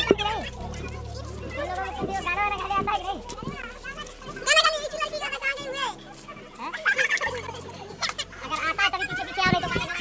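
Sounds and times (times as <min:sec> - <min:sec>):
children chattering excitedly: 0:00.0 - 0:10.0.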